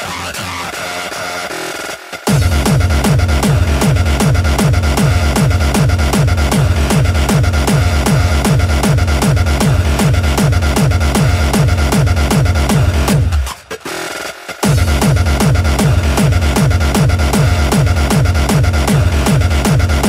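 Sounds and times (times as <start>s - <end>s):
dense synth layer: 0.0s - 20.0s
distorted kick drum: 2.3s - 13.5s, 14.6s - 20.0s.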